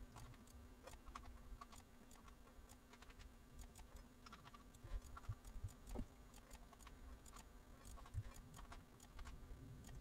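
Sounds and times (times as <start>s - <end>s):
low steady hum: 0.0s - 10.0s
mouse and keyboard clicks: 0.1s - 10.0s.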